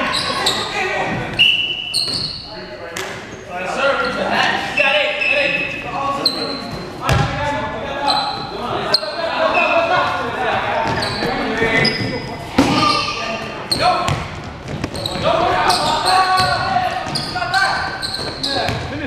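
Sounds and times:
players' voices and shouts: 0:00.0 - 0:19.0
sneaker squeaks: 0:00.0 - 0:19.0
basketball bouncing on court: 0:07.1 - 0:07.4, 0:14.0 - 0:15.2, 0:18.2 - 0:19.0.

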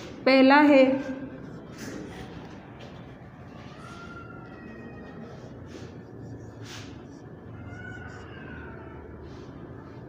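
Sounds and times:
steady low hum: 0:00.0 - 0:10.0
marker squeaking on a whiteboard: 0:00.6 - 0:10.0.

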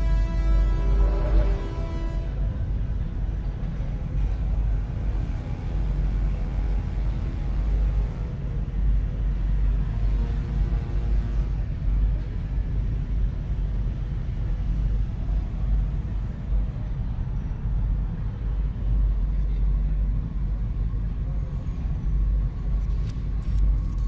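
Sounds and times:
faint murmur of voices: 0:00.0 - 0:23.4
low machinery rumble: 0:00.0 - 0:24.0.

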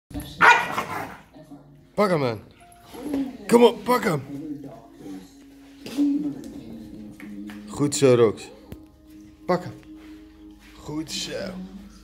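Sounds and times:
dog barking: 0:00.4 - 0:01.3.

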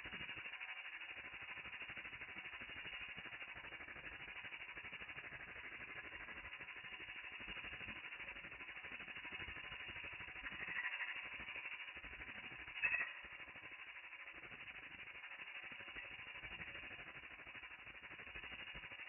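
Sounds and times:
ultrasonic cleaner pulsing hiss: 0:00.0 - 0:19.0.

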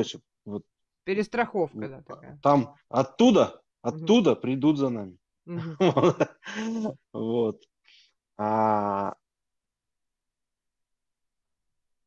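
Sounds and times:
conversation over video call: 0:00.0 - 0:10.8.

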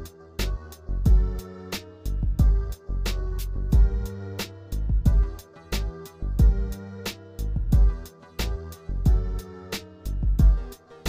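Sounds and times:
hip hop instrumental beat: 0:00.0 - 0:11.0.

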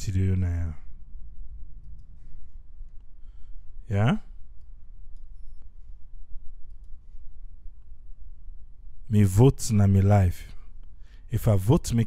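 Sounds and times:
steady low hum: 0:00.0 - 0:12.0
faint click: 0:06.6 - 0:07.0.

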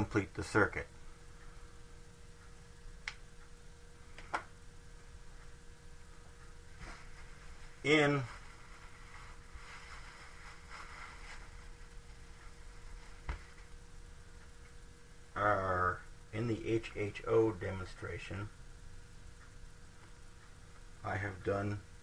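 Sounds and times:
faint constant tone: 0:00.0 - 0:22.0
low hum: 0:00.0 - 0:22.0
paper towel wiping whiteboard: 0:06.8 - 0:13.7.

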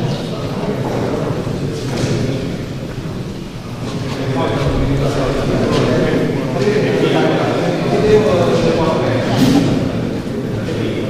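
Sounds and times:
indistinct voices: 0:00.0 - 0:11.0
low rumble of large hall: 0:00.0 - 0:11.0.

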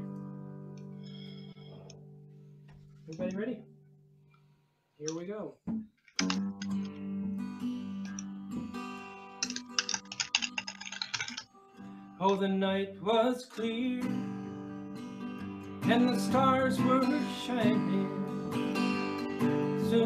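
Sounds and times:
acoustic guitar strumming: 0:05.7 - 0:10.8, 0:11.5 - 0:20.0.

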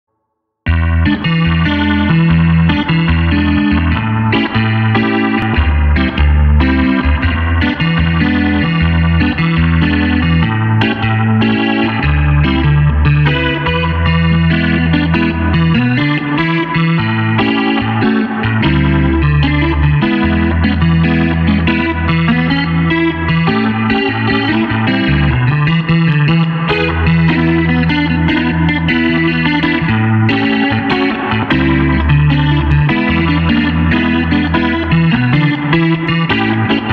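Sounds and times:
clavinet playing funk: 0:00.7 - 0:36.9.

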